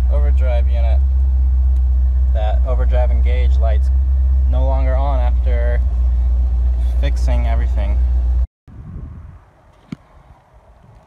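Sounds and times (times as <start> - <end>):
car engine idling: 0.0 - 8.5.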